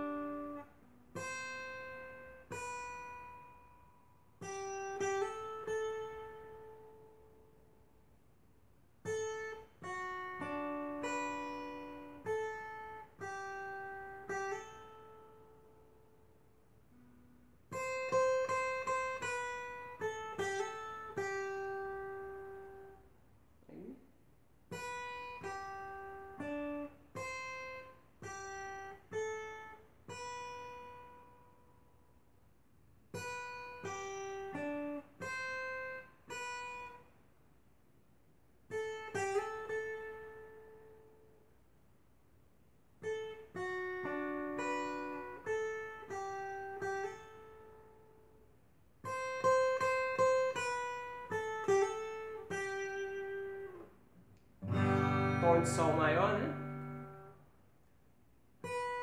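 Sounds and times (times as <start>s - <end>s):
acoustic guitar melody: 0.0s - 24.0s, 24.6s - 32.2s, 33.1s - 37.2s, 38.6s - 41.6s, 42.6s - 57.7s, 58.5s - 59.0s.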